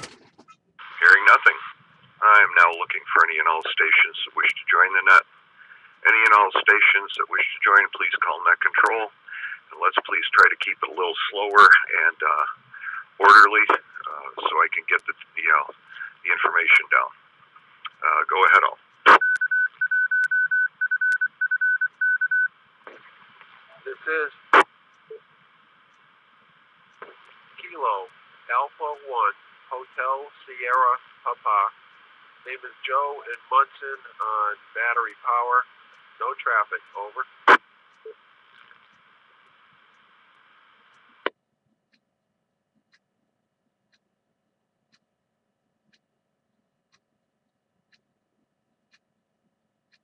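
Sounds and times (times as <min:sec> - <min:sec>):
radio hiss: 0:00.8 - 0:19.2, 0:22.9 - 0:41.3
radio squelch click: 0:12.4 - 0:20.4, 0:25.9 - 0:28.2
morse code beeps: 0:19.1 - 0:22.5
faint ticks: 0:43.9 - 0:44.1, 0:44.9 - 0:45.1, 0:45.9 - 0:46.1, 0:46.9 - 0:47.1, 0:47.9 - 0:48.1, 0:48.9 - 0:49.1.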